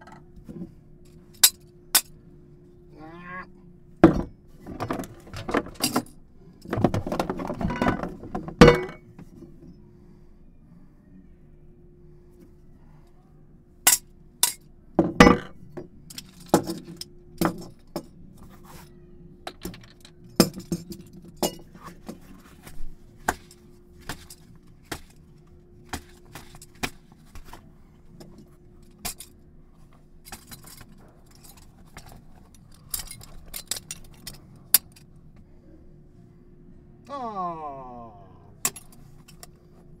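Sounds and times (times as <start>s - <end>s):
faint steady hum: 0.0s - 40.0s.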